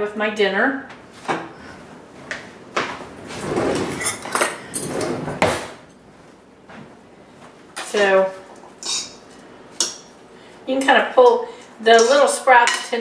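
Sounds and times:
drawer sliding open and shut: 0:03.3 - 0:05.8.

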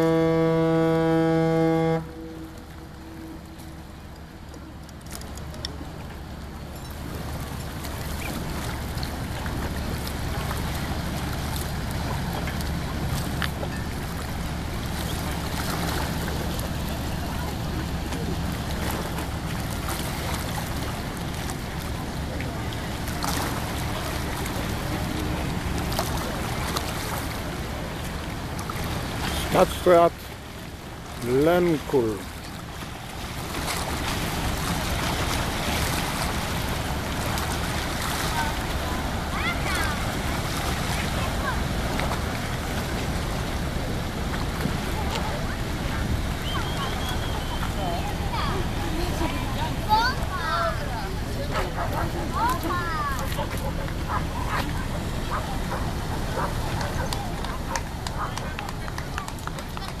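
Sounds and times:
ship horn blast: 0:00.0 - 0:05.0
faint voices: 0:00.0 - 0:33.1, 0:33.7 - 1:00.0
ship engine humming: 0:00.0 - 1:00.0.

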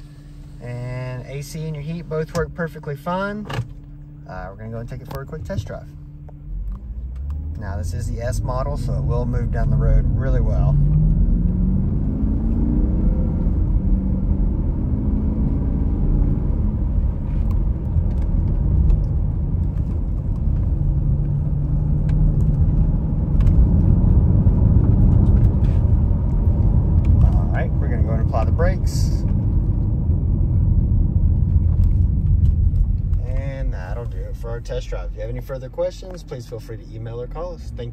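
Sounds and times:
car engine accelerating: 0:00.0 - 0:37.9
road and tyre rumble: 0:00.0 - 0:37.9.

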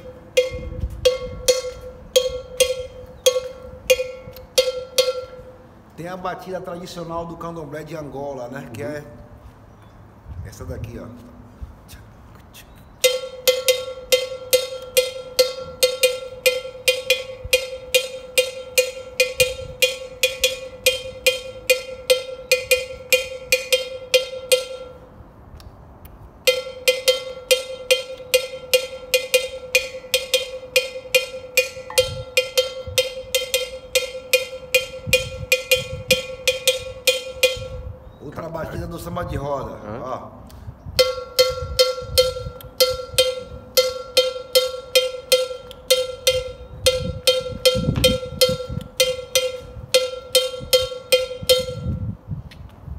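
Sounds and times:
agogo bell struck with stick: 0:00.0 - 0:05.6, 0:13.0 - 0:25.1, 0:26.4 - 0:37.9, 0:41.0 - 0:52.1.

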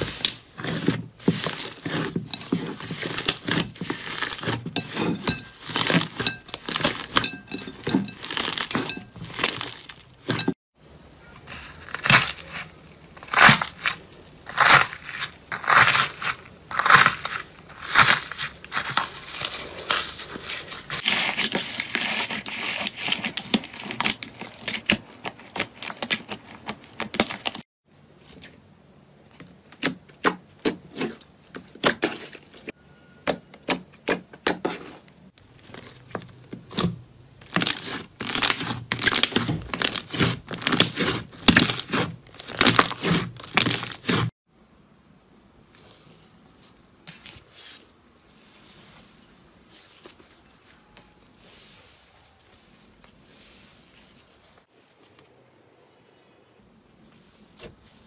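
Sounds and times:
slime squelching and crackling: 0:00.0 - 0:10.6, 0:35.4 - 0:44.3
slime crust crackling: 0:35.4 - 0:44.3.

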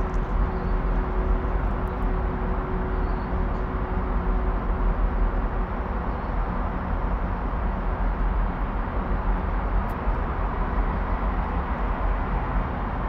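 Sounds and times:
low rumbling background noise: 0:00.0 - 0:13.0.

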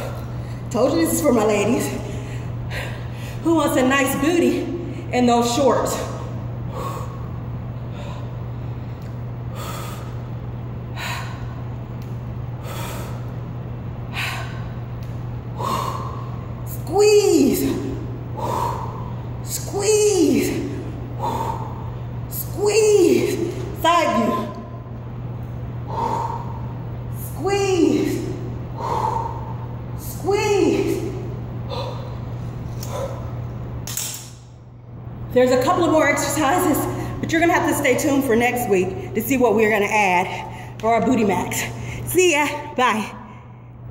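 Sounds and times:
steady low hum: 0:00.0 - 0:43.9
woman breathing hard: 0:02.0 - 0:03.4, 0:06.6 - 0:11.8, 0:12.5 - 0:14.9, 0:15.5 - 0:16.7, 0:17.6 - 0:19.5, 0:20.4 - 0:22.3, 0:25.8 - 0:27.0, 0:27.9 - 0:29.9, 0:30.9 - 0:33.4.

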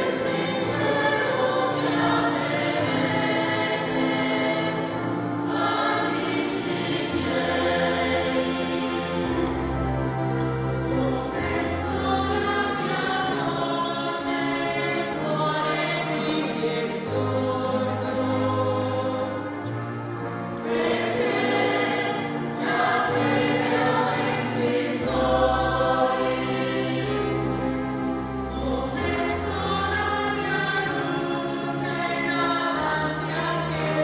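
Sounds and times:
choir singing a hymn: 0:00.0 - 0:34.0
sustained low accompaniment notes: 0:00.0 - 0:34.0.

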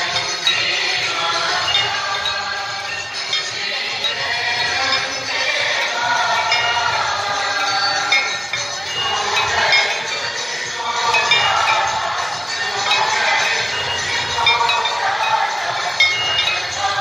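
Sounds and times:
metal hand bells ringing: 0:00.0 - 0:17.0.

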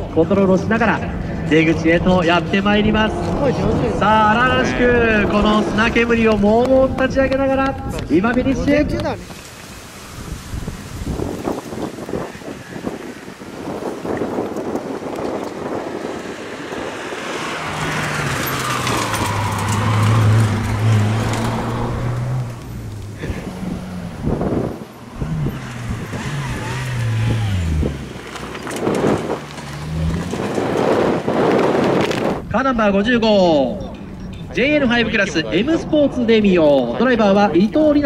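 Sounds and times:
rally car engine at full throttle: 0:00.0 - 0:07.4, 0:10.2 - 0:32.6.

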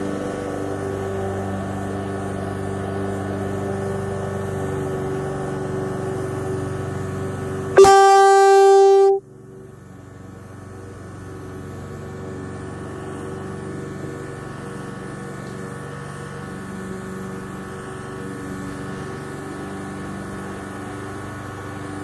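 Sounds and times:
vehicle horn honk: 0:07.8 - 0:09.2.

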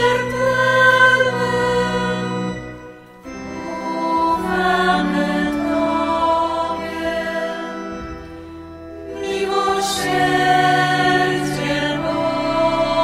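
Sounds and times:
choir singing long held notes: 0:00.0 - 0:13.0.

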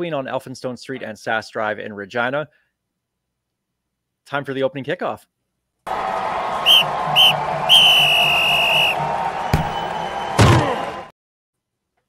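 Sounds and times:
stadium crowd: 0:05.9 - 0:11.1
referee's whistle blasts: 0:06.2 - 0:11.1.

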